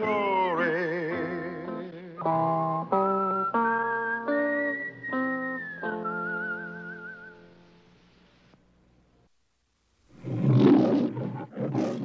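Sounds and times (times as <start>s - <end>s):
big cat roaring: 10.2s - 12.0s.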